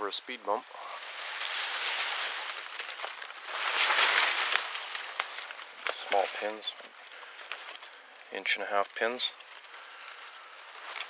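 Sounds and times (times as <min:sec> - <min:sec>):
brush and leaves rustling: 0:00.0 - 0:11.0
twigs crackling: 0:00.0 - 0:11.0.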